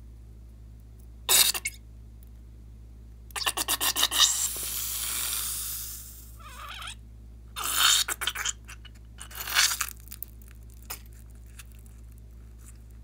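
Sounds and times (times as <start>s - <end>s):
slime hissing rush: 3.8s - 6.4s
slime crackling: 9.2s - 13.0s.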